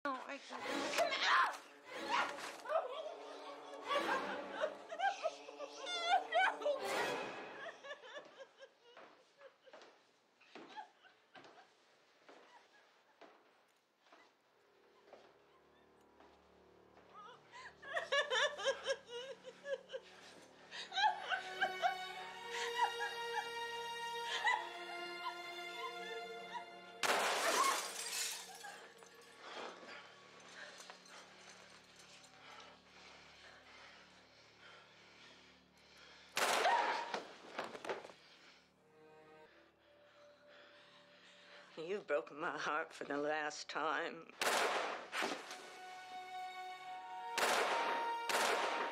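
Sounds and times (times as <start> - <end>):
woman laughing: 2.0 - 9.9, 17.1 - 23.6
held music chord: 2.8 - 7.4, 45.6 - 48.9
revolver gunshot: 44.4 - 45.5, 47.4 - 48.9.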